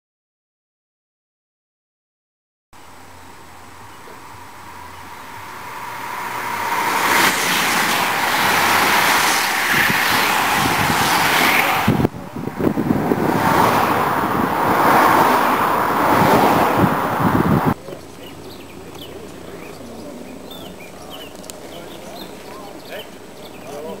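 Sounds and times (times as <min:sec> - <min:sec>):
cars passing: 0:02.8 - 0:24.0
bicycle tyres rushing on tarmac: 0:03.8 - 0:17.8.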